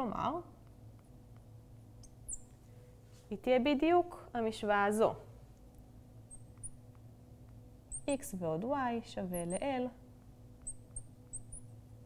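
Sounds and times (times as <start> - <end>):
low electrical hum: 0.0 - 12.0
marker squeaking on glass: 2.0 - 2.5, 7.9 - 8.2, 9.3 - 9.7, 10.6 - 11.7.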